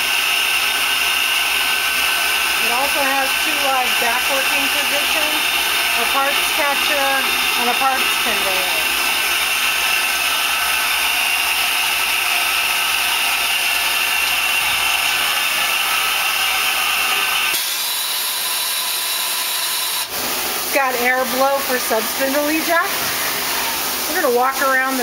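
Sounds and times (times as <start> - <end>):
lathe hissing whir: 0.0 - 25.0.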